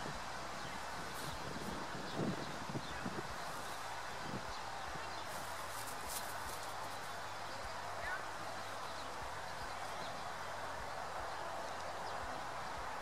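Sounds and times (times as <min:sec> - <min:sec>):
wind on microphone: 0:00.0 - 0:06.8.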